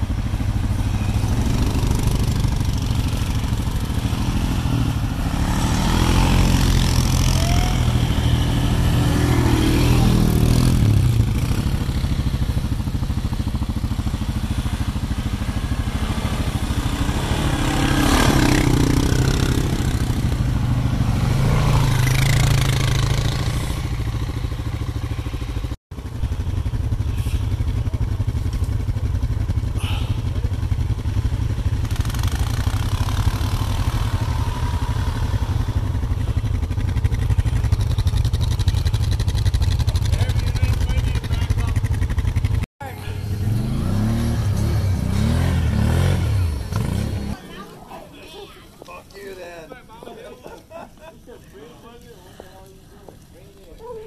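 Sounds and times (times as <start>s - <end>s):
atv engines revving: 0.0s - 54.0s.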